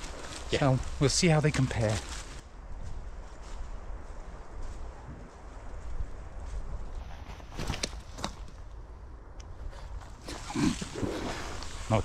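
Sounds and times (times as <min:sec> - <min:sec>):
footsteps crunching through dry leaves: 0:00.0 - 0:08.2
low wind rumble on microphone: 0:00.0 - 0:12.0.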